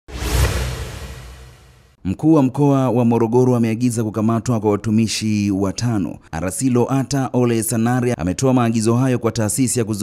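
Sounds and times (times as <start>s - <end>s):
swoosh sound effect: 0.1s - 2.0s.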